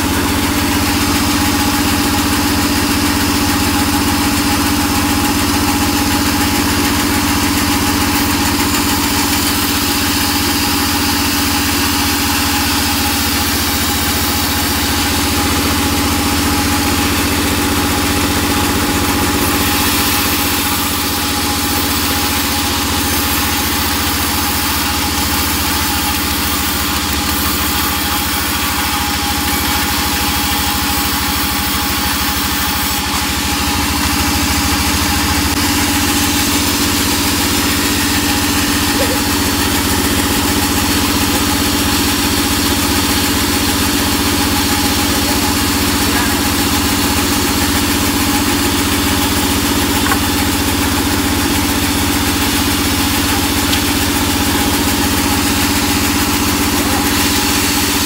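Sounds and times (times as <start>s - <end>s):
band saw cutting wood: 0.0s - 58.0s.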